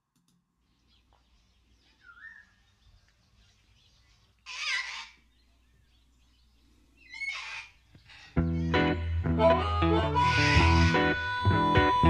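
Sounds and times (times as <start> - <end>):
loud harsh animal calls: 4.4 - 5.2, 7.0 - 9.0, 9.9 - 11.4
brief pitched animal call: 10.3 - 11.2.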